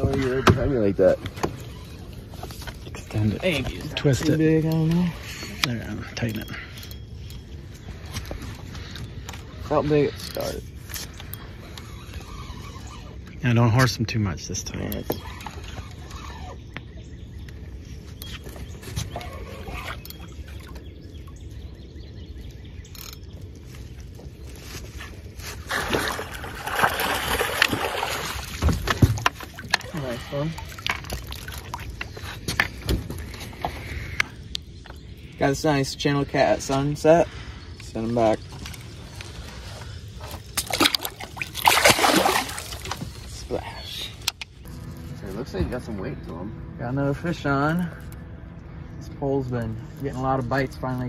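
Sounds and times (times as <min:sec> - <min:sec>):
fish splashing in water: 0:25.7 - 0:29.9, 0:40.3 - 0:43.2
fish splashing at surface: 0:40.6 - 0:43.1.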